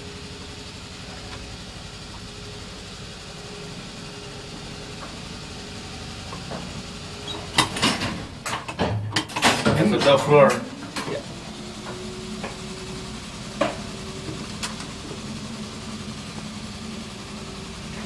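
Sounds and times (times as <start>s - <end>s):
elevator car humming: 0.0s - 18.0s
loud clicks and clatter: 6.3s - 11.2s, 13.6s - 15.0s.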